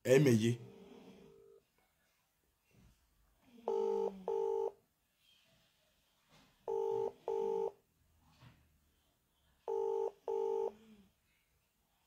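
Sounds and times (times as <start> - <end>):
telephone ringback tone: 3.7 - 4.8, 6.7 - 7.8, 9.7 - 10.8.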